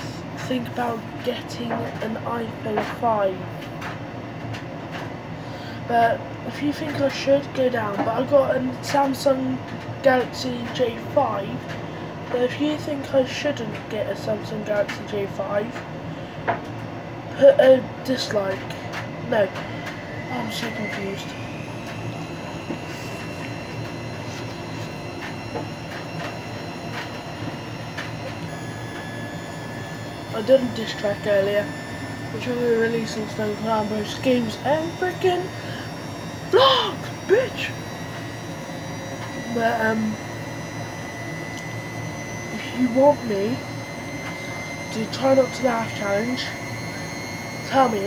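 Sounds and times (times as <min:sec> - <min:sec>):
faint high whine: 0:00.0 - 0:48.0
mechanical hum: 0:00.0 - 0:48.0.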